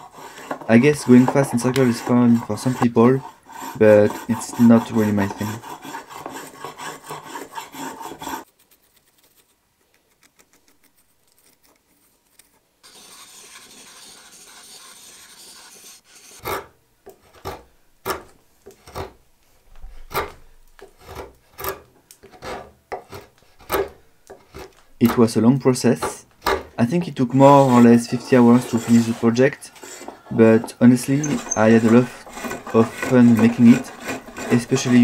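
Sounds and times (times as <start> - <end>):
spokeshave scraping wood: 0.0 - 8.5, 11.4 - 19.2, 19.8 - 35.0.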